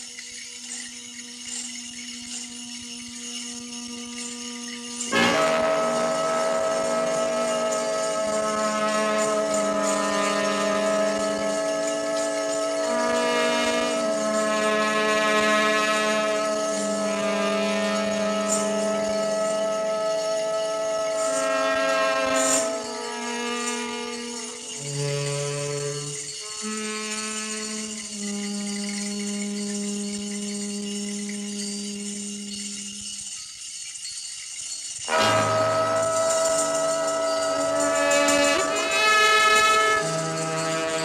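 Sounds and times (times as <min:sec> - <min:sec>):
jazz ensemble playing chords: 0:05.1 - 0:21.8, 0:35.1 - 0:41.0.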